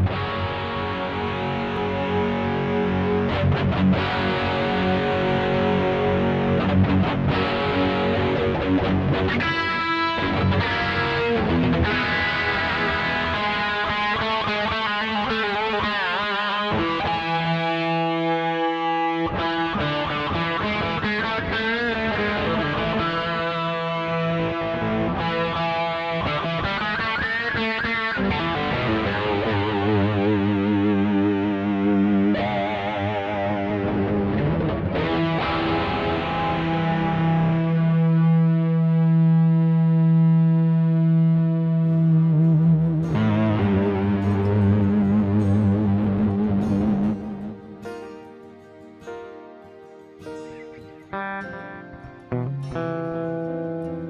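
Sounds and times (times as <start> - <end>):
bass: 0.0 - 15.4, 19.3 - 47.8
electric guitar lead: 0.0 - 54.0.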